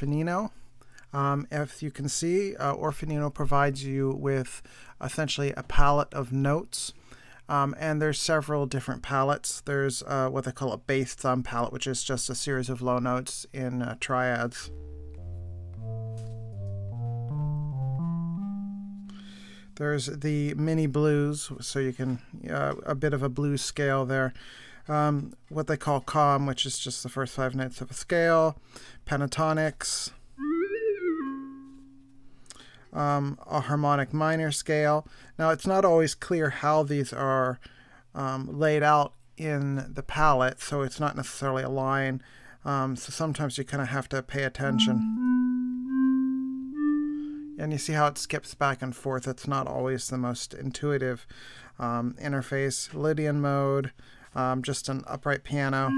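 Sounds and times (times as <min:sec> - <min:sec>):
low bass notes: 0:14.6 - 0:19.8, 0:44.7 - 0:47.7.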